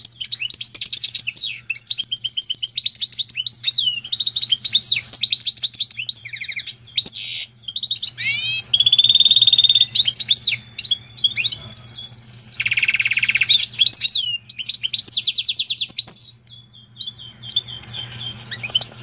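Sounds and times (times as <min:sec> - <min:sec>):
bird singing trills: 0:00.0 - 0:19.0.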